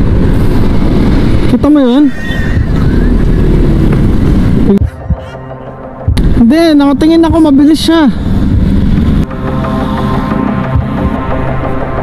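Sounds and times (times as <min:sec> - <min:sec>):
wind noise on microphone: 0:00.0 - 0:05.4, 0:06.1 - 0:11.8
traffic: 0:00.0 - 0:12.0.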